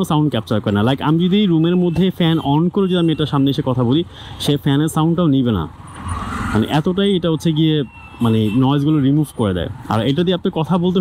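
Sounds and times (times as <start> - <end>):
man speaking: 0.0 - 5.8, 6.6 - 11.0.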